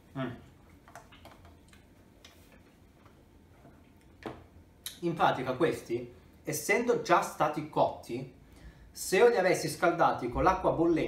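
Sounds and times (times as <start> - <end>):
faint clicks of person eating: 0.7 - 3.2.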